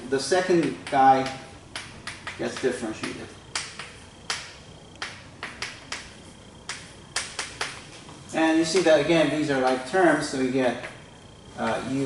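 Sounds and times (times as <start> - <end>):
chalk clicking on blackboard: 0.6 - 7.8.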